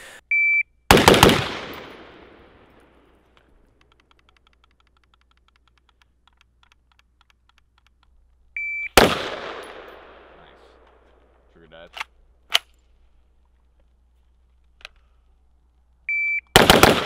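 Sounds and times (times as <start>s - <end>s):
shot timer beep: 0.3s - 0.7s, 8.6s - 9.0s, 16.1s - 16.5s
rifle shots echoing: 0.9s - 3.3s, 8.9s - 11.0s, 16.5s - 17.0s.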